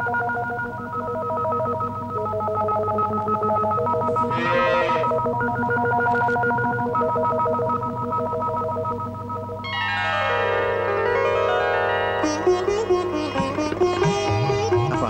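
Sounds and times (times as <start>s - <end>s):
electronic tones stepping in pitch: 4.1s - 5.5s.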